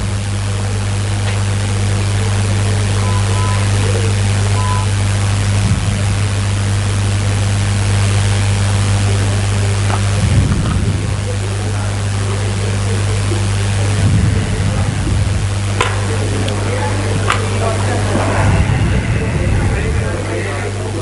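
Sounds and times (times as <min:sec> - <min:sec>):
brief low rumbles: 0:00.0 - 0:21.0
low electrical hum: 0:00.0 - 0:21.0
steady hiss: 0:00.0 - 0:21.0.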